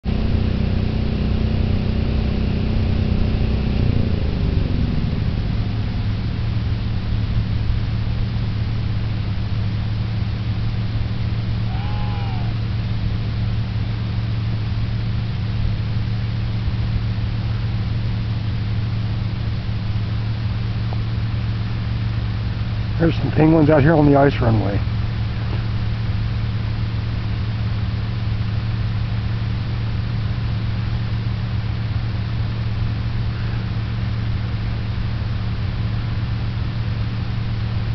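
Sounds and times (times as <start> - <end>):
higher engine tone sliding down: 0.0 - 7.4
low engine hum: 0.0 - 37.9.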